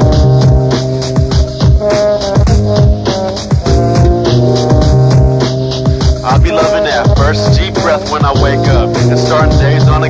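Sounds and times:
hip-hop beat with bass: 0.0s - 10.0s
person rapping: 6.0s - 10.0s.

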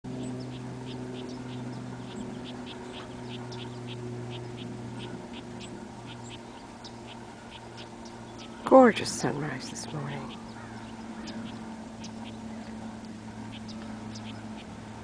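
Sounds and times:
steady low hum: 0.0s - 15.0s
bird chirping: 0.1s - 8.7s, 9.6s - 14.8s.

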